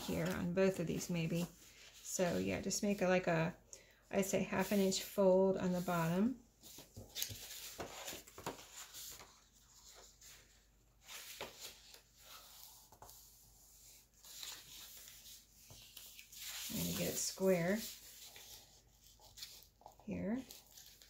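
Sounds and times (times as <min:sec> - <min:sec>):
paper rustling and creasing: 0:05.8 - 0:21.0.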